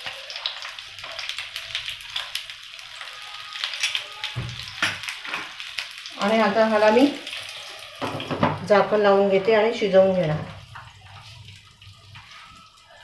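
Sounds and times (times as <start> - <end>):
chillies sizzling in oil: 0.0 - 13.0.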